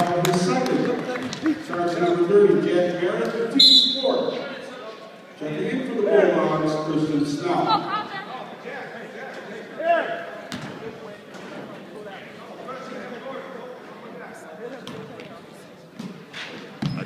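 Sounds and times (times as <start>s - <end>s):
voices echoing in a gymnasium: 0.0s - 17.0s.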